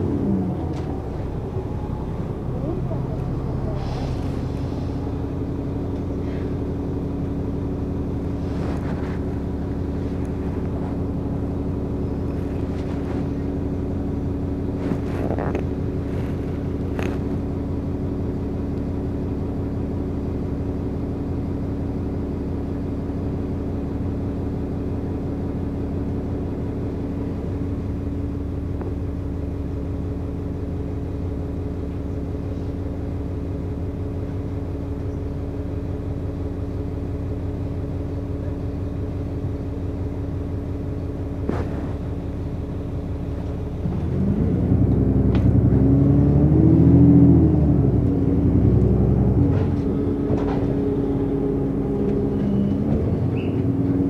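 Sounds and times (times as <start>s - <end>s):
bus engine humming: 0.0s - 54.0s.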